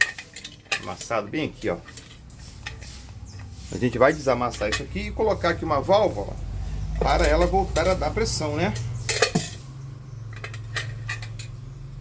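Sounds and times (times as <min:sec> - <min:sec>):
metal lid clattering on bench: 0:00.0 - 0:02.8, 0:08.7 - 0:09.7, 0:10.3 - 0:11.7.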